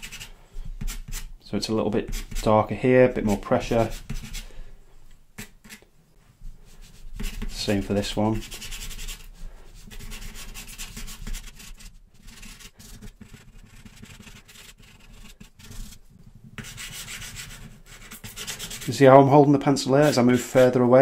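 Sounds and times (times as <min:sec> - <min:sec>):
charcoal pencil scratching on paper: 0:00.0 - 0:01.3, 0:02.0 - 0:02.5, 0:03.5 - 0:04.5, 0:05.4 - 0:05.8, 0:06.7 - 0:19.1.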